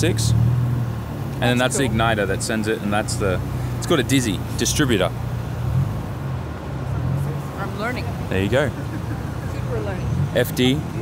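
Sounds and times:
parking area noise: 0:00.0 - 0:11.0.

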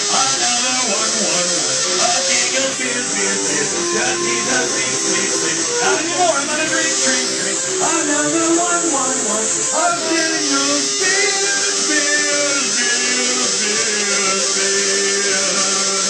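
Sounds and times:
man's voice: 0:00.0 - 0:16.0.

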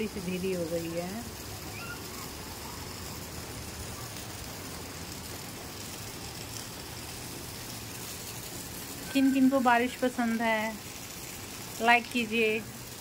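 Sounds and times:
rain falling steadily: 0:00.0 - 0:13.0.

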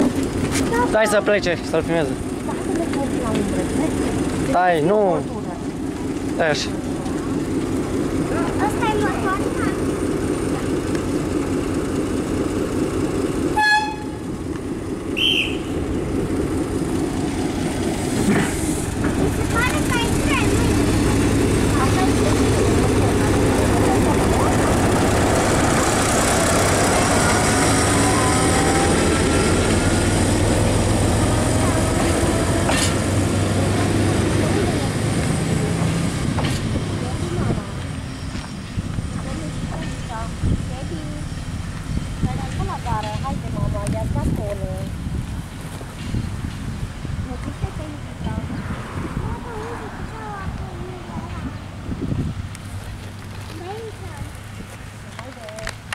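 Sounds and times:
diesel railcar engine drone: 0:00.0 - 0:55.9
rising whine: 0:12.1 - 0:42.3
high pitched signal: 0:27.0 - 0:29.9.

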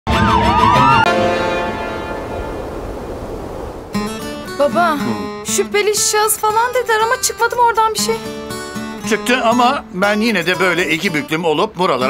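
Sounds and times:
sirens wailing: 0:00.1 - 0:02.6.

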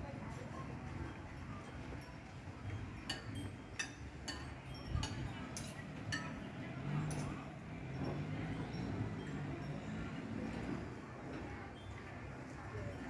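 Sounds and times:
murmur of voices: 0:00.0 - 0:13.0
light sharp clinks: 0:00.6 - 0:13.0.

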